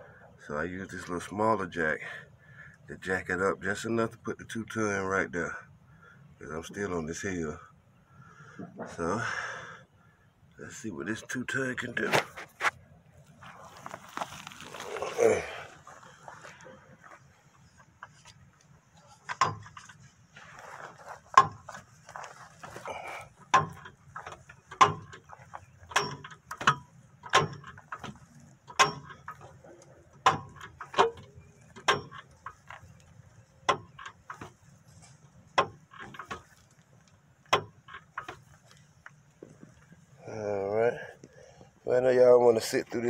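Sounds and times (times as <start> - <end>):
hydraulic jack pump clicks: 23.5 - 29.6.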